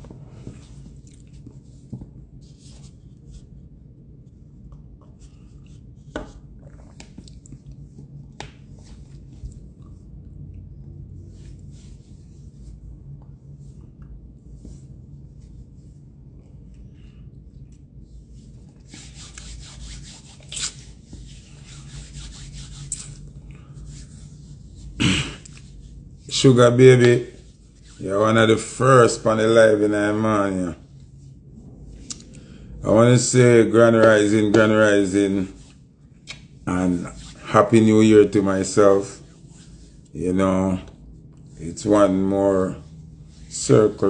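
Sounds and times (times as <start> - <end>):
low room hum: 0.0 - 44.0
hands rubbing together: 18.4 - 28.2.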